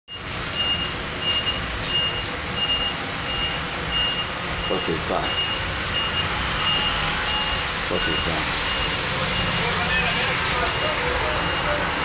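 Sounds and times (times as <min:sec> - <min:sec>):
electronic warning beeper: 0:00.1 - 0:11.8.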